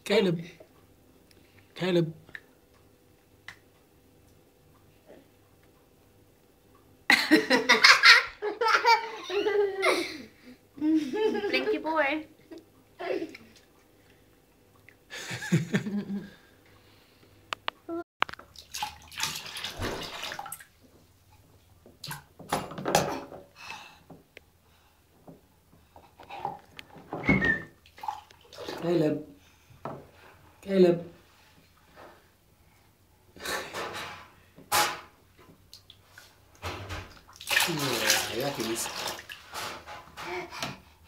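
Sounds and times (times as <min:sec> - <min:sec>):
bath water splashing: 0:18.3 - 0:20.8, 0:27.8 - 0:28.9, 0:35.7 - 0:40.0.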